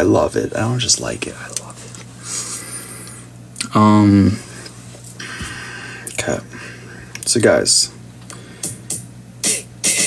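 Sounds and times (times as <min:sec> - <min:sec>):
steady low hum: 0:00.0 - 0:10.0
man breathing and mouth noises: 0:01.6 - 0:03.3, 0:04.2 - 0:07.2, 0:08.2 - 0:09.1.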